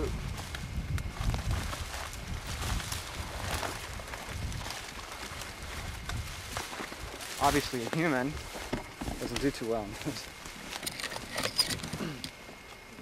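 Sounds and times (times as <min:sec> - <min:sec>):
brush rustling: 0:00.1 - 0:13.0
camera handling rumble: 0:10.5 - 0:12.8.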